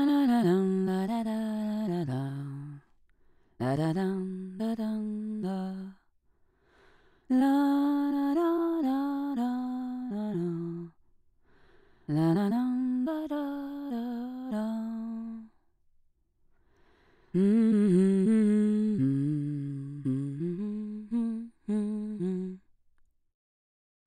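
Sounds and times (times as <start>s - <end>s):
person humming a slow tune: 17.4s - 22.7s.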